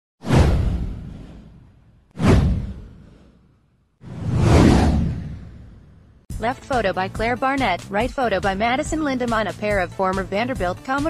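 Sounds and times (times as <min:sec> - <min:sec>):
whoosh with deep low rumble: 0:00.2 - 0:06.3.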